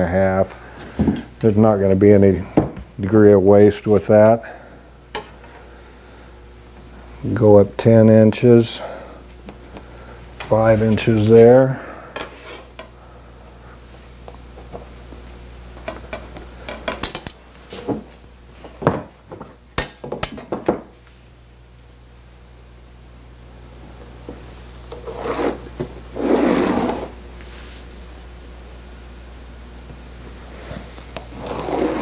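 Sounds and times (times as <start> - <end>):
pencil scratching along straightedge: 25.0 - 25.6, 26.2 - 27.1, 31.3 - 32.0.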